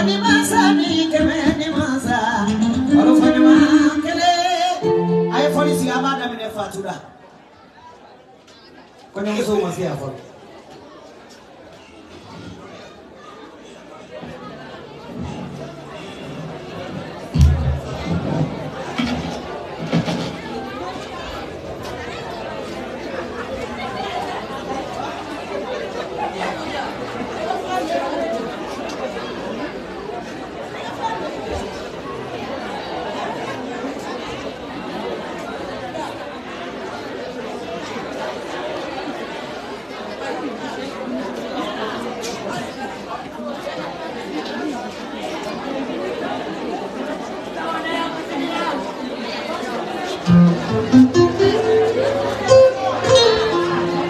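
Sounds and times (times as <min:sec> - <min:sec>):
crowd chatter: 0:00.0 - 0:54.0
loud plucked-string music: 0:02.4 - 0:04.2, 0:04.8 - 0:06.2, 0:17.4 - 0:20.2, 0:50.3 - 0:54.0.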